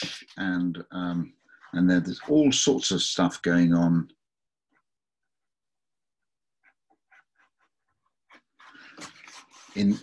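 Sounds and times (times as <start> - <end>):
pen scratching on paper: 1.4 - 3.0, 4.7 - 10.0.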